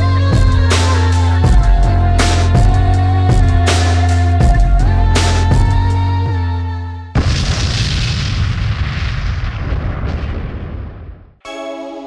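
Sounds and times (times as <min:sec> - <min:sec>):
electronic music with deep bass: 0:00.0 - 0:06.7.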